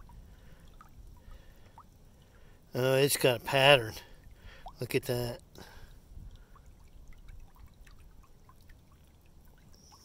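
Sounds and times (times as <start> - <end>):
creek water trickling over pebbles: 0.0 - 10.0.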